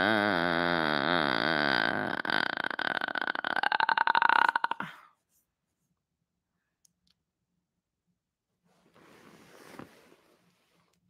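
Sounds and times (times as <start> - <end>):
long human burp: 0.0 - 5.1.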